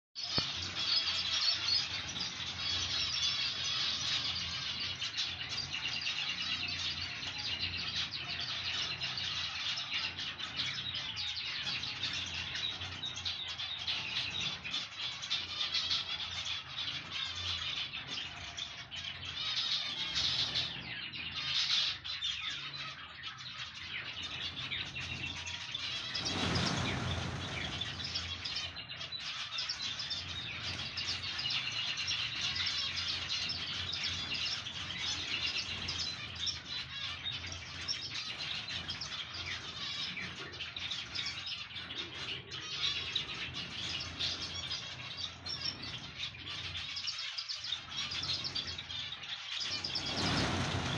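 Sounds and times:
finches chirping in chorus: 0.2s - 50.9s.

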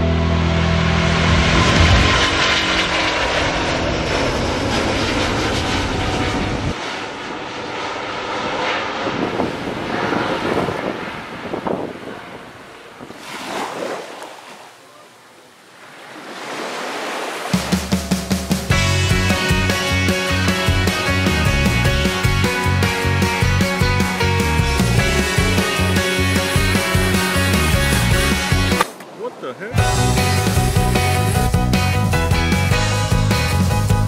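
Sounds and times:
rock music: 0.0s - 2.9s, 17.6s - 28.8s, 29.8s - 34.0s
jet airliner taking off: 0.0s - 13.9s, 18.7s - 33.9s.

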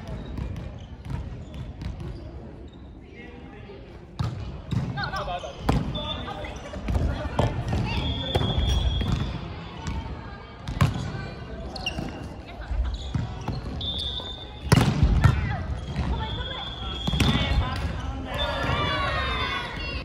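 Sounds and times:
volleyball being hit: 14.7s - 15.5s.

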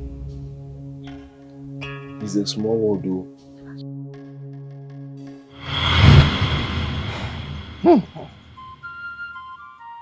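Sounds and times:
soft flute music: 7.8s - 10.0s.

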